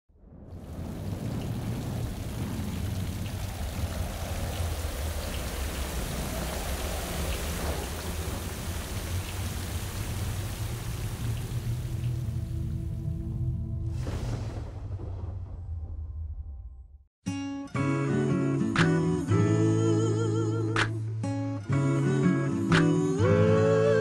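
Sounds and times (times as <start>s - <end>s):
low rumble of thunder: 0.1s - 16.9s
heavy rainfall: 0.2s - 13.2s.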